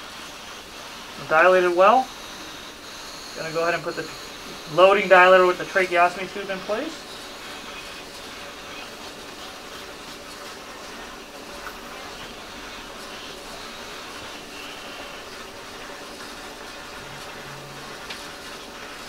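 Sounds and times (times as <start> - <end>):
hospital equipment hum and hiss: 0.0 - 19.0.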